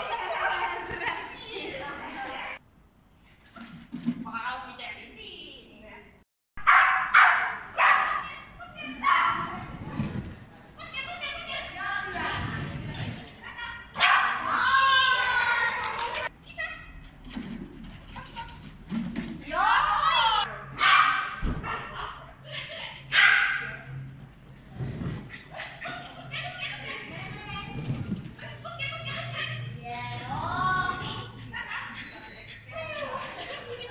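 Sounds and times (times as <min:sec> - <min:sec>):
dog barking: 0:06.6 - 0:08.3, 0:14.0 - 0:14.5, 0:20.8 - 0:22.1, 0:23.1 - 0:23.8.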